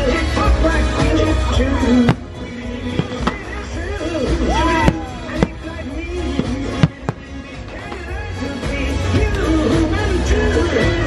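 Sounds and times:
show soundtrack on loudspeakers: 0:00.0 - 0:11.0
fireworks bangs: 0:01.8 - 0:08.4.

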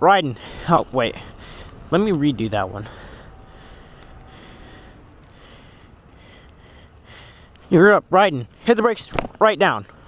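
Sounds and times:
bike tyres on asphalt: 0:00.0 - 0:10.0.

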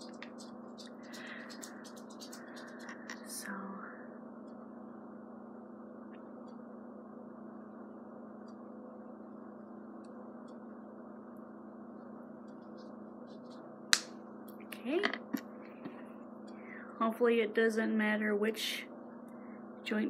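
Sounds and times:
electrical hum and hiss: 0:00.0 - 0:20.0.

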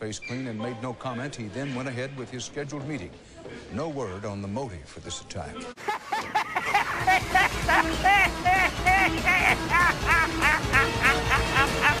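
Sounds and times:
man's high-pitched cackling laugh: 0:05.9 - 0:12.0.

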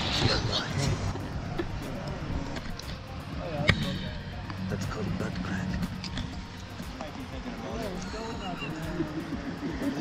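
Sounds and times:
faint voices: 0:00.0 - 0:10.0
low outdoor rumble: 0:00.0 - 0:10.0.

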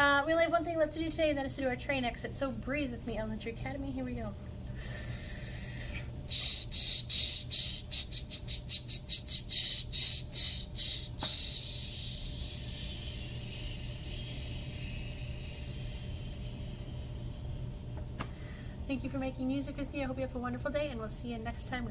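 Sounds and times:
low hum: 0:00.0 - 0:21.9
person imitating steam train chuffs: 0:04.8 - 0:15.0.

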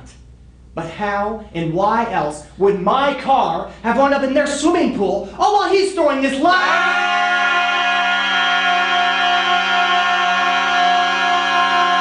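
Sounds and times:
man yelling: 0:06.3 - 0:12.0.

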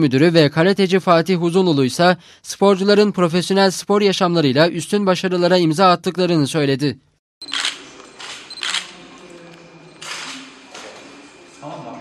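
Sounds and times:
camera shutters firing: 0:07.4 - 0:09.0, 0:10.0 - 0:10.5.

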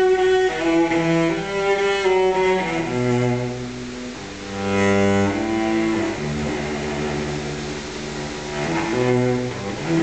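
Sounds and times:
cello and double bass bowing: 0:00.0 - 0:10.0.

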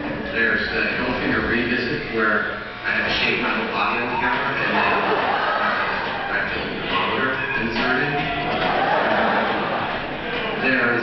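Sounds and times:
voices over loudspeakers: 0:00.3 - 0:09.1.

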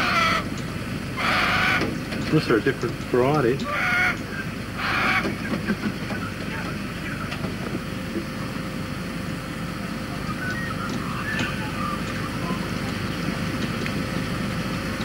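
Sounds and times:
faint constant hum: 0:00.0 - 0:15.0.

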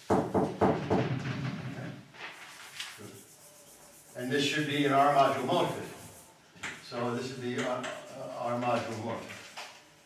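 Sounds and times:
rubbing chalk off blackboard: 0:02.2 - 0:06.4.

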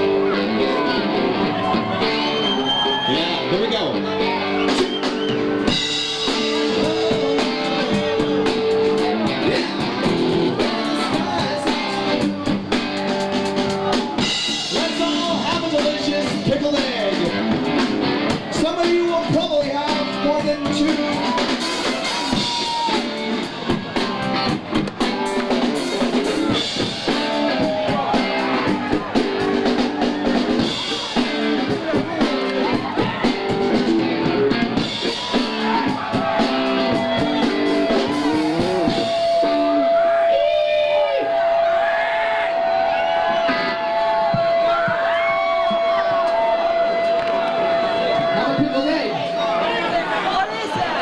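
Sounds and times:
voices shouting: 0:00.0 - 0:16.2, 0:20.5 - 0:51.0
punk rock band playing: 0:00.0 - 0:51.0
steady high tone: 0:38.5 - 0:41.5.

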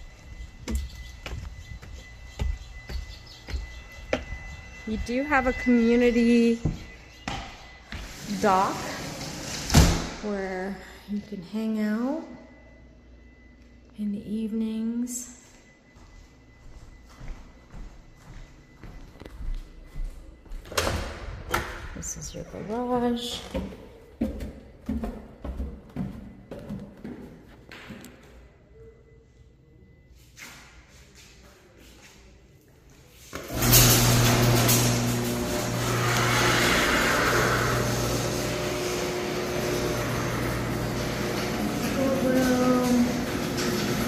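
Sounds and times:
garage door opener motor hum: 0:00.0 - 0:10.5, 0:33.3 - 0:44.0
footsteps on vinyl floor: 0:00.1 - 0:06.9, 0:15.9 - 0:20.7, 0:23.2 - 0:28.0
garage door rumbling rattle: 0:08.1 - 0:10.2, 0:33.5 - 0:44.0.

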